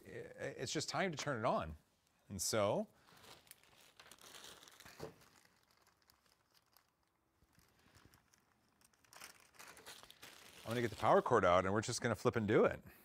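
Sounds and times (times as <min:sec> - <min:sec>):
plastic packaging crinkling: 0:03.0 - 0:11.5.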